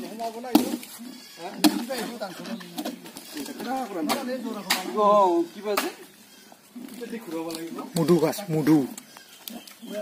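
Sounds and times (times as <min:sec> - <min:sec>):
voices talking: 0:00.0 - 0:10.0
axe chopping into log: 0:00.5 - 0:00.8.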